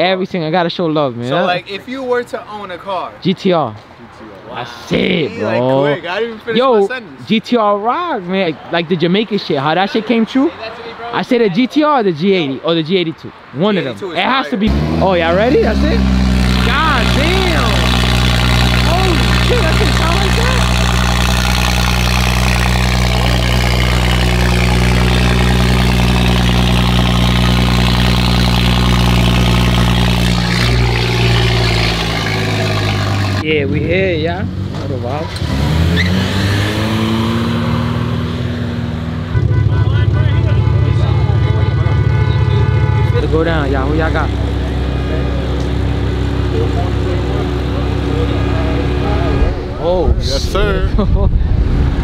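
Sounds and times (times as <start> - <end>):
car engine idling: 14.6 - 34.2, 39.2 - 50.6.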